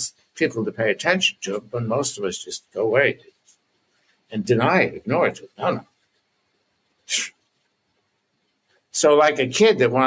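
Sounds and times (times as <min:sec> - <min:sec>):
short sharp exhalation: 0:07.1 - 0:07.4.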